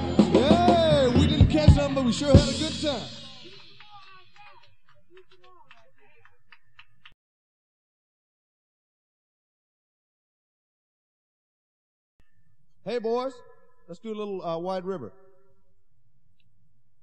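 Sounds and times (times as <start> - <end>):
blues-rock band playing: 0.0 - 4.0
people shouting: 0.0 - 4.6
scattered clapping: 1.6 - 7.2.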